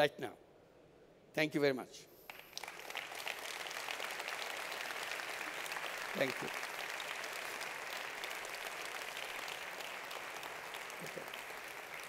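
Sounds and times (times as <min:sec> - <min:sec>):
audience applauding: 0:02.3 - 0:12.0.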